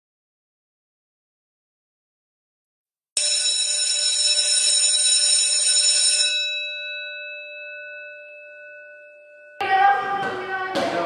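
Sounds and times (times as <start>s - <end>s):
bell ringing: 3.2s - 10.6s.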